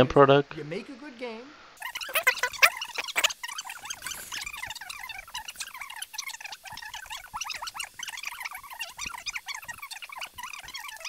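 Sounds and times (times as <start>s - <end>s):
fast-forwarded garbled chattering: 1.8s - 11.0s.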